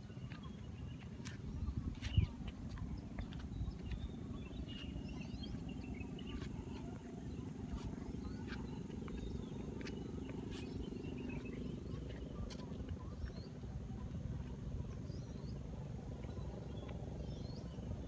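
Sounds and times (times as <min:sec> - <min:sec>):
faint high bird chirps: 0:00.0 - 0:17.8
steady low rumble: 0:00.0 - 0:18.0.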